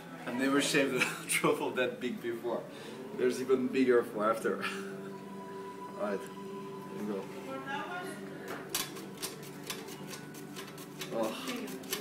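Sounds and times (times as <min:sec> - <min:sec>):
truffle scraping on slicer blade: 0:08.8 - 0:12.0.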